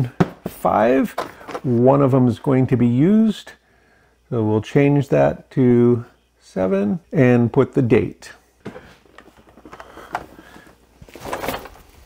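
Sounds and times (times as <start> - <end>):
plastic tote rustling scrape: 8.8 - 12.0.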